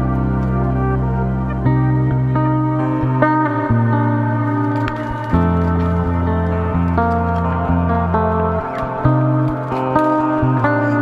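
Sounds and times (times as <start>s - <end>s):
guitar ringing notes: 0.0s - 11.0s
low bass line: 0.0s - 11.0s.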